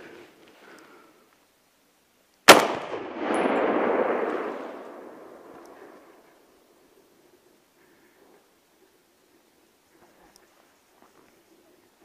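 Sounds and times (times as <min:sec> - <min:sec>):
rifle shot: 0:02.5 - 0:06.2
rolling echo off valley sides: 0:02.5 - 0:06.8.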